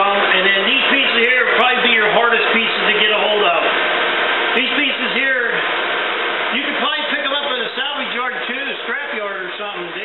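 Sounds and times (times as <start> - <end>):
man talking: 0.0 - 3.8, 4.5 - 5.7, 6.5 - 10.0
hair dryer running: 0.0 - 10.0.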